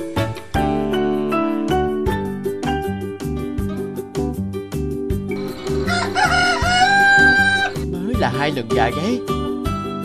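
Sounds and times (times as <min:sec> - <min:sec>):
rooster crowing: 0:05.4 - 0:07.8.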